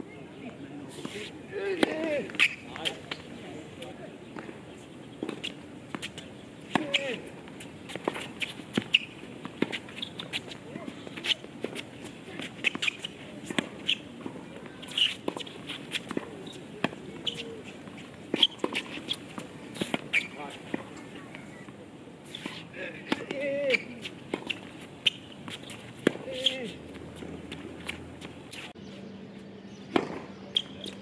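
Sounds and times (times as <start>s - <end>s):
footsteps on court: 4.2s - 28.8s.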